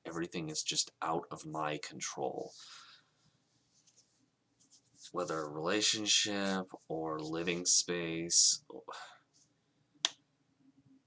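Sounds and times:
man speaking: 0:00.0 - 0:02.6, 0:05.1 - 0:09.2.

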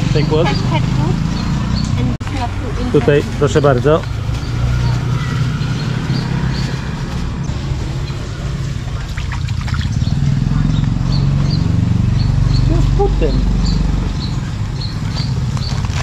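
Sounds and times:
plastic bags rustling and crinkling: 0:03.2 - 0:08.0, 0:15.0 - 0:16.0.

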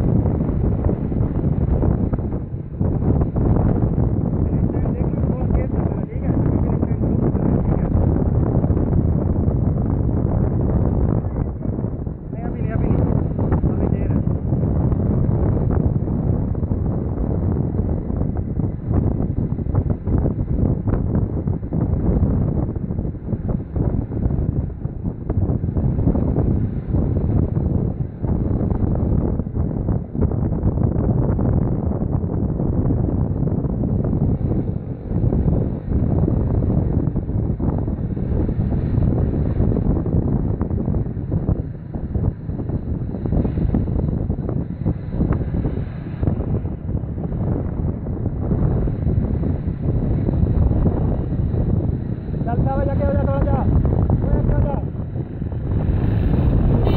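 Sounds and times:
wind buffeting microphone: 0:00.0 - 0:56.9.

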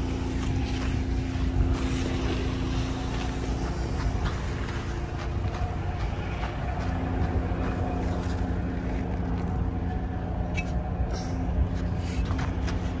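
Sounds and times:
truck engine rumbling: 0:00.0 - 0:13.0.

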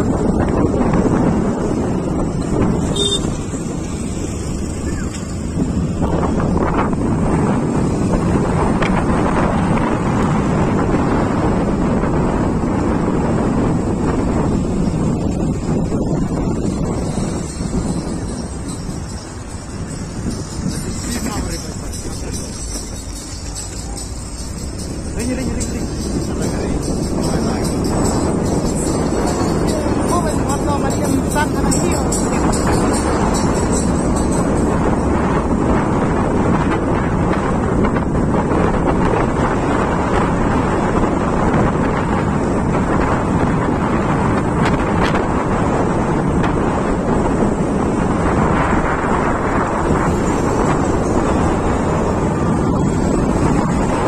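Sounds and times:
vehicle road and engine noise: 0:00.0 - 0:54.0
wind buffeting microphone: 0:00.0 - 0:54.0
music: 0:17.9 - 0:34.5
indistinct voices: 0:20.7 - 0:33.9.

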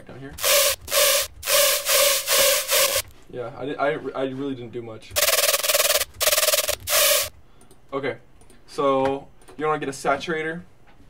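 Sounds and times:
distorted synth stabs: 0:00.4 - 0:03.1.

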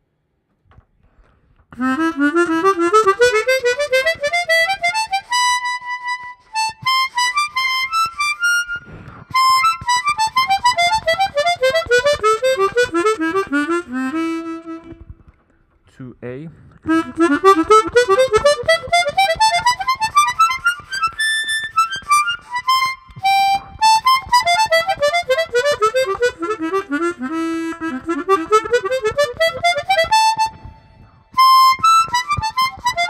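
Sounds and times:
harmonica playing note runs: 0:01.8 - 0:15.0, 0:16.9 - 0:30.8, 0:31.4 - 0:33.0
person breathing: 0:08.7 - 0:09.5.

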